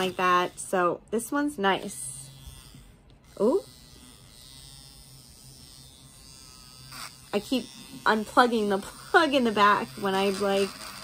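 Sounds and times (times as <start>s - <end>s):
electric nail drill buzzing: 0.0s - 11.0s.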